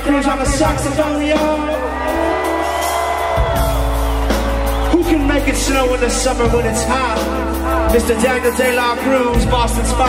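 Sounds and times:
live reggae rock band: 0:00.0 - 0:10.0.

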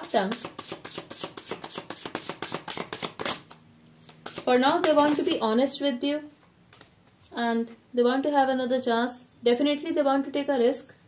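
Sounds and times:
cards being shuffled: 0:00.3 - 0:05.6.

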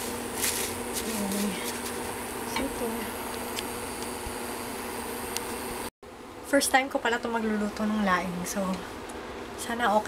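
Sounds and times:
steady hum with hiss: 0:00.0 - 0:10.0.

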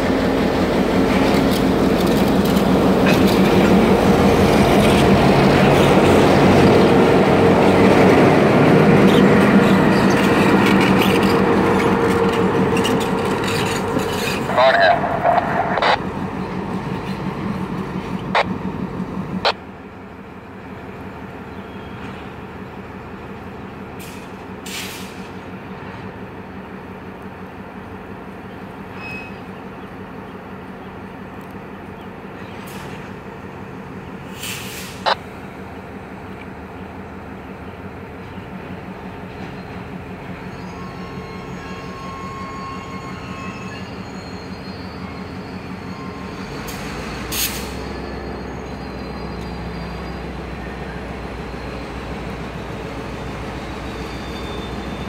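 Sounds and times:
diesel locomotive engine rumbling: 0:00.0 - 0:55.0
faint wheel squeal: 0:28.9 - 0:29.6, 0:40.3 - 0:51.9, 0:53.6 - 0:55.0.

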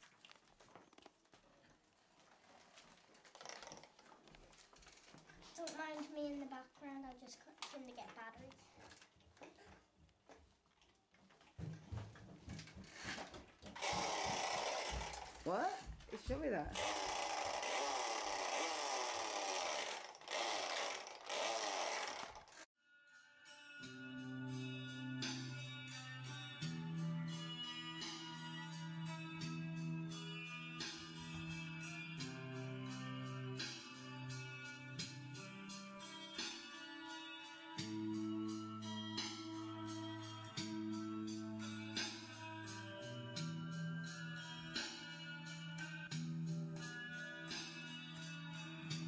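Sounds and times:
electronic motorbike engine revving: 0:13.8 - 0:15.4, 0:16.7 - 0:22.7.

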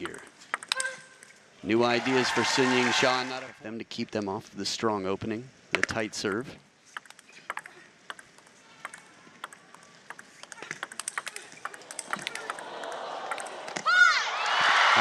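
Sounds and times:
ping pong ball clicking: 0:00.0 - 0:01.3, 0:06.9 - 0:13.8
loud shout: 0:01.6 - 0:03.5, 0:12.2 - 0:15.0
crowd cheering and applause: 0:01.7 - 0:03.6, 0:11.8 - 0:15.0.

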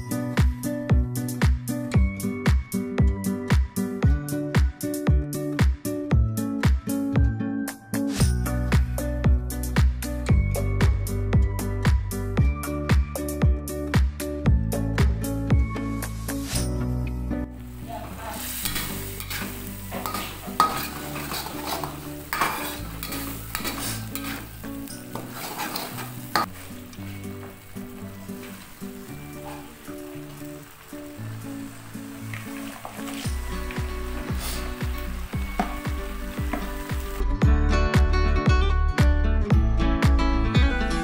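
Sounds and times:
background music: 0:00.0 - 0:41.0
paste sizzling in a wok: 0:17.6 - 0:37.2
metal spatula scraping wok: 0:17.7 - 0:29.7, 0:32.5 - 0:36.9.

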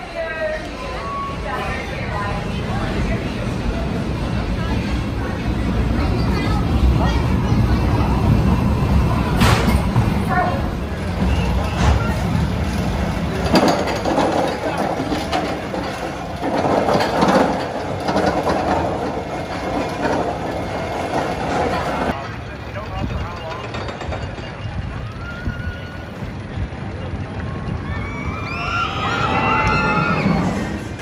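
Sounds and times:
distant roller coaster: 0:00.0 - 0:31.0
people's voices: 0:00.0 - 0:31.0
roller coaster mechanical rumble: 0:00.0 - 0:31.0
lift chain clicking and clacking: 0:09.3 - 0:25.8.

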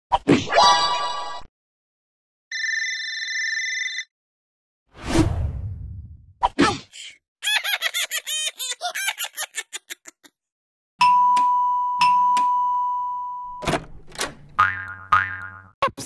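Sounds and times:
doorbell chime: 0:11.0 - 0:13.6
cartoon boing sounds: 0:14.6 - 0:15.8.

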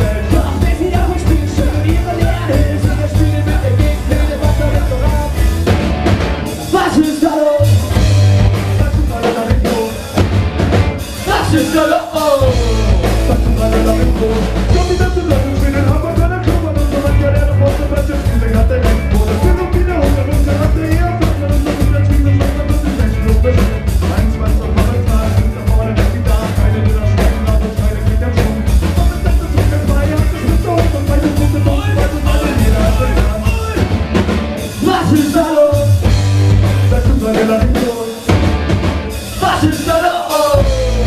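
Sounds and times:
person singing: 0:00.0 - 0:05.7, 0:06.6 - 0:10.3, 0:11.1 - 0:34.0, 0:34.7 - 0:38.4, 0:39.2 - 0:41.0
bass: 0:00.0 - 0:41.0
drum kit: 0:00.0 - 0:41.0
electric guitars: 0:00.0 - 0:41.0
ska-punk band playing live: 0:00.0 - 0:41.0.

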